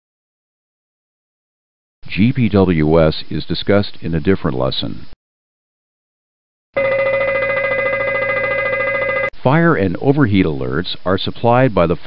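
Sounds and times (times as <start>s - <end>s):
fire warning bell ringing: 6.8s - 9.3s.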